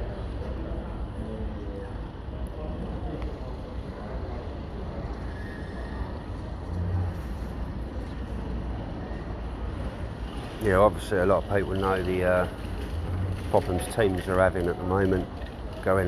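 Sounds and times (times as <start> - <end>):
faint distant voices: 0.0 - 16.0
steady low street rumble: 0.0 - 16.0.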